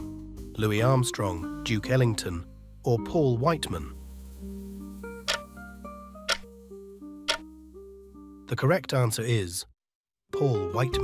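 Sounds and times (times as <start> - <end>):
soft background music: 0.0 - 9.3, 10.3 - 11.0
countdown timer ticking: 5.3 - 5.5, 6.3 - 6.5, 7.3 - 7.5.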